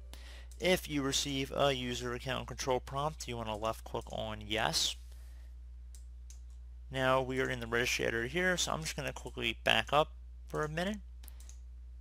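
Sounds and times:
low electrical hum: 0:00.0 - 0:12.0
faint mouse clicks: 0:11.2 - 0:11.7.

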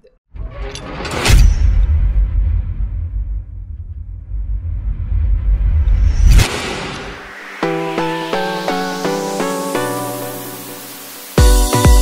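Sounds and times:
deep bass rumble: 0:01.5 - 0:07.4.

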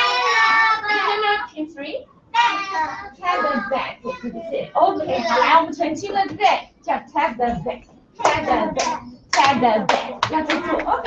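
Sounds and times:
children's voices: 0:00.0 - 0:01.5, 0:02.4 - 0:06.4, 0:07.5 - 0:11.0
hand clapping: 0:08.2 - 0:11.0.

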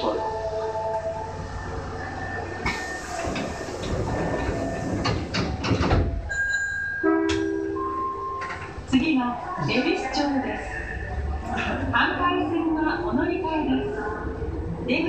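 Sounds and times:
subway train hum: 0:00.0 - 0:15.0
train noise and clatter: 0:00.0 - 0:15.0.

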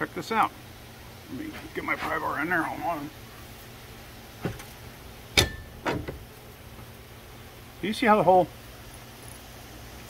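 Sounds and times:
pry bar knocking on metal: 0:05.4 - 0:06.2.

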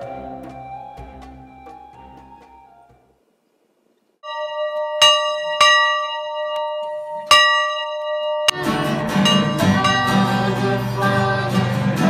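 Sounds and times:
acoustic guitar strumming: 0:00.0 - 0:03.0, 0:08.4 - 0:12.0
bell ringing: 0:04.2 - 0:10.6.

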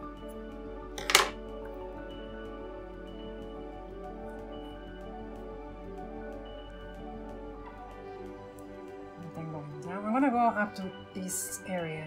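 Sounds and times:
soft background music: 0:00.0 - 0:12.0
scissors clattering on wooden table: 0:01.0 - 0:01.4.

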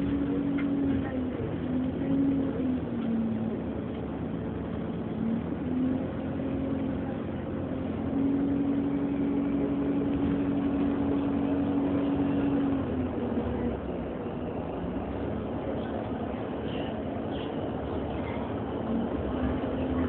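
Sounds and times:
bus drivetrain and road rumble: 0:00.0 - 0:20.0.

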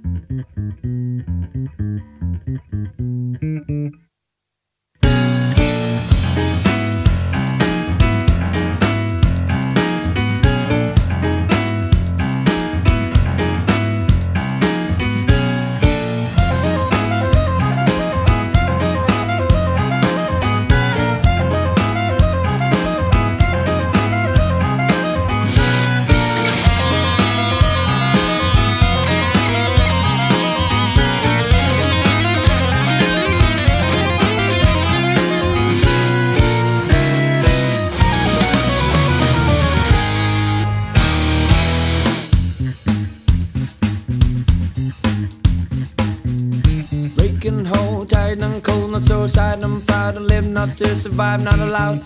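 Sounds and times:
progressive rock band playing: 0:05.0 - 0:46.8.

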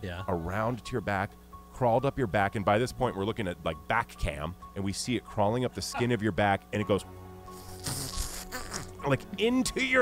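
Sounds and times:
man making mouth sound effect: 0:07.6 - 0:09.0.

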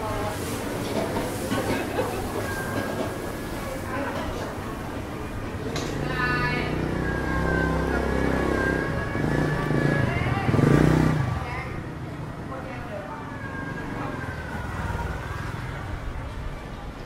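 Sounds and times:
people talking: 0:00.0 - 0:17.0
motorbike engine passing: 0:05.9 - 0:16.3.

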